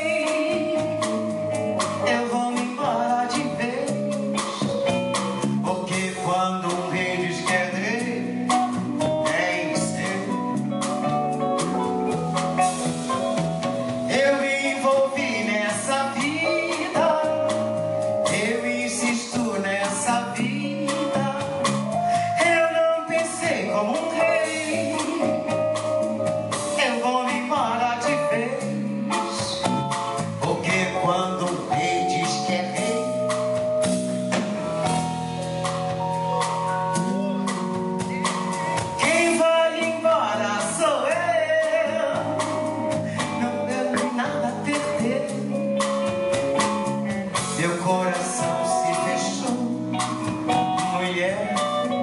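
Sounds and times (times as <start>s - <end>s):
person singing: 0.0s - 4.9s, 5.6s - 11.0s, 14.1s - 33.4s, 36.0s - 52.0s
drum kit with cymbals: 0.0s - 52.0s
electric guitar: 0.0s - 52.0s
live band music: 0.0s - 52.0s.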